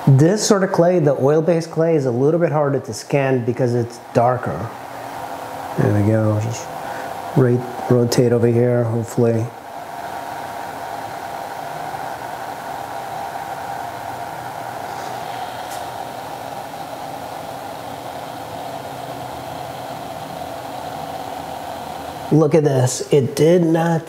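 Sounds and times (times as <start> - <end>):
cooling fan whirring: 0.0 - 24.0.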